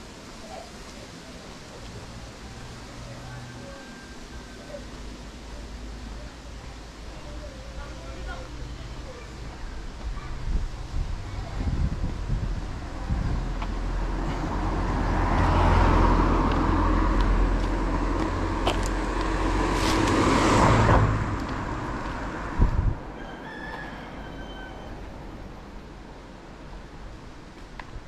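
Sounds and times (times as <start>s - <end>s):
rooster crowing faintly: 2.9s - 5.0s, 23.0s - 25.2s
car passing: 12.0s - 23.5s.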